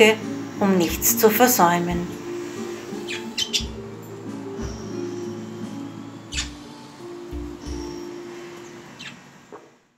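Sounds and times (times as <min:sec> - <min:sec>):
background music: 0:00.0 - 0:09.4
budgerigar calls: 0:03.0 - 0:03.9, 0:06.3 - 0:06.7, 0:09.0 - 0:09.3.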